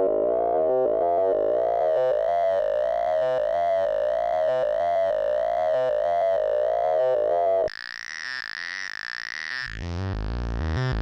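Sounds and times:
filtered synthesizer note sequence: 0:00.0 - 0:07.7.

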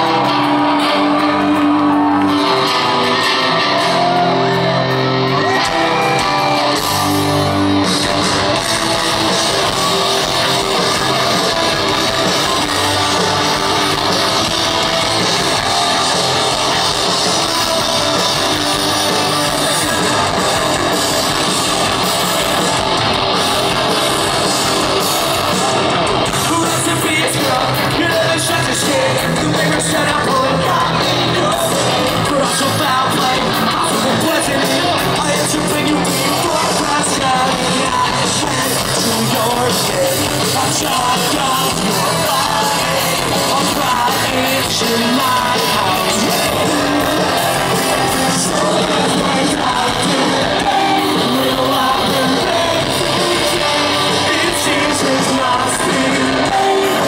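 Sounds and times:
drums: 0:00.0 - 0:57.0
live rock band playing: 0:00.0 - 0:57.0
shouted vocals: 0:00.0 - 0:57.0
sustained guitar chords: 0:00.0 - 0:57.0.

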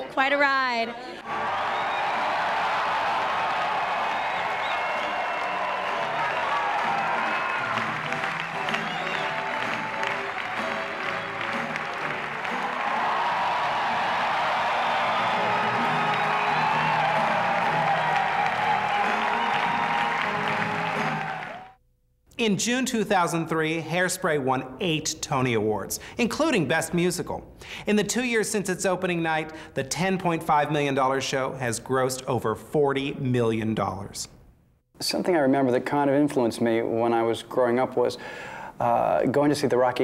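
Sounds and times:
audience applauding: 0:01.2 - 0:21.8
show music: 0:01.2 - 0:21.8.

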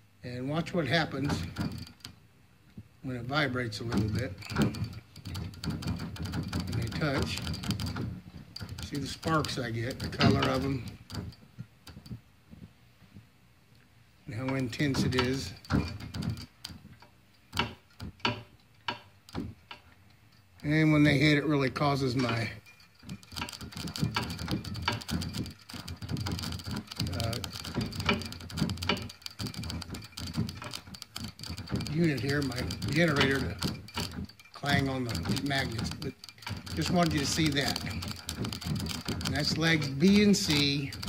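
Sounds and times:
motor clicking and knocking: 0:00.6 - 0:02.2, 0:03.2 - 0:12.3, 0:14.3 - 0:20.0, 0:20.6 - 0:41.0
rotor clanging on magnets: 0:00.6 - 0:02.3, 0:03.1 - 0:12.8, 0:14.2 - 0:41.0.

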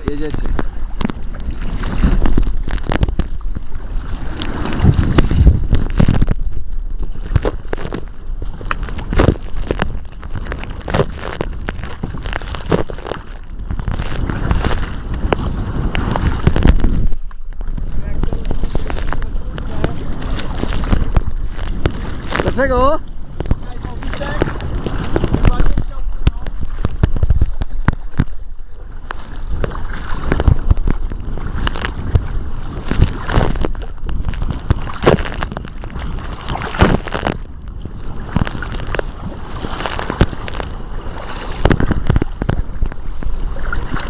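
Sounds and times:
kayak paddles splashing water: 0:00.0 - 0:44.0
wind buffeting microphone: 0:00.0 - 0:44.0.

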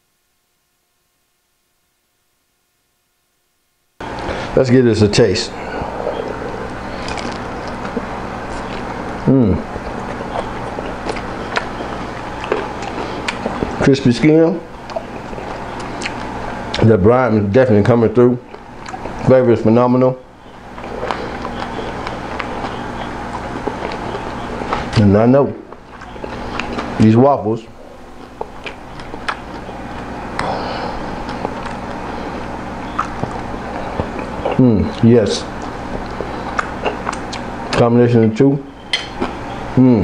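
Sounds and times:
low background hum: 0:00.0 - 0:40.0
crunchy chewing: 0:05.5 - 0:16.9, 0:17.6 - 0:37.9, 0:38.7 - 0:39.8.

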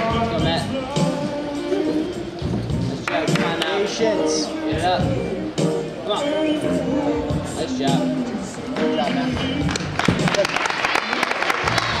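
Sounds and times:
crowd clapping: 0:08.8 - 0:12.0.

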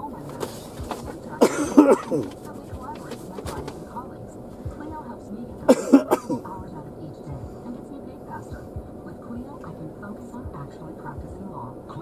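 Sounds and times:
person speaking: 0:00.0 - 0:12.0
cough: 0:01.4 - 0:02.3, 0:05.7 - 0:06.5.

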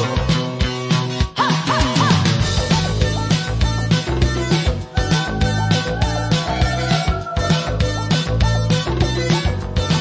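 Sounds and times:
pop song with drum beat: 0:00.0 - 0:10.0.

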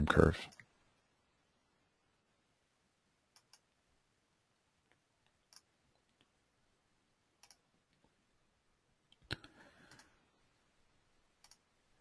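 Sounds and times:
computer mouse clicks: 0:03.3 - 0:03.7, 0:04.9 - 0:06.3, 0:07.4 - 0:08.0, 0:09.1 - 0:10.2, 0:11.4 - 0:11.7.

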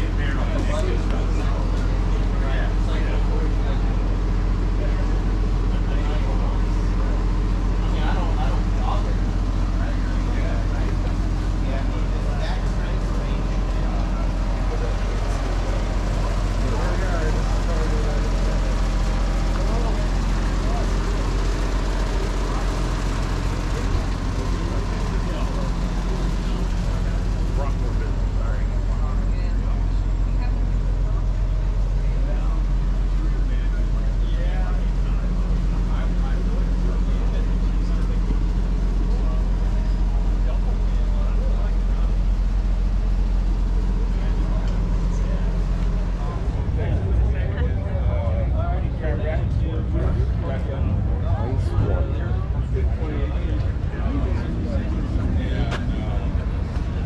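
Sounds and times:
background chatter of people: 0:00.0 - 0:57.0
steady low hum: 0:00.0 - 0:57.0.

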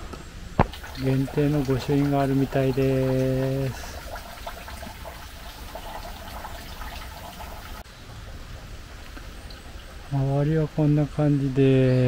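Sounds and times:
water trickling and splashing: 0:00.6 - 0:10.2.

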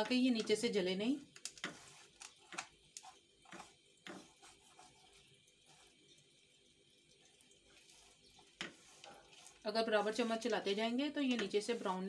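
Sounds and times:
spatula scraping in a pan: 0:01.4 - 0:06.1, 0:07.6 - 0:12.0.

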